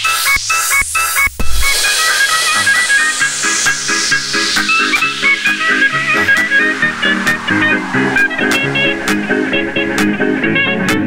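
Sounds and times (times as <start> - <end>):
white-noise sweep: 0.0 - 10.4
repeating synth riff: 1.4 - 10.0.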